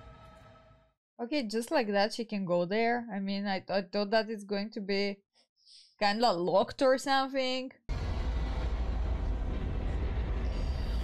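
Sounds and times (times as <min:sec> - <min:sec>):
low steady rumble: 0:07.9 - 0:11.0.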